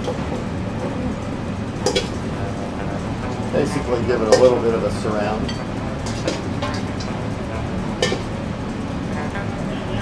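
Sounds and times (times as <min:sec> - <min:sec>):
kitchen background: 0:00.0 - 0:10.0
metal tongs clinking on bowl: 0:01.8 - 0:08.4.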